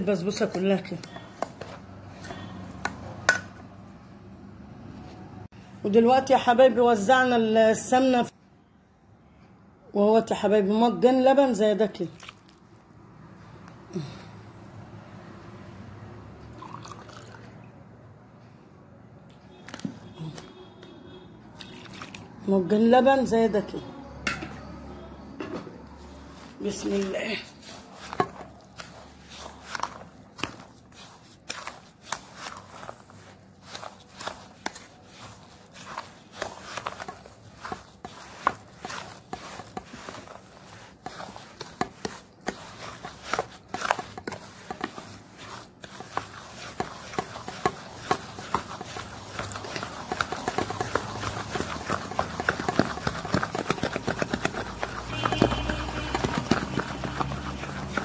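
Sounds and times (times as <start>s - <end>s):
spoon scraping metal bowl: 0.1s - 3.6s, 26.2s - 58.0s.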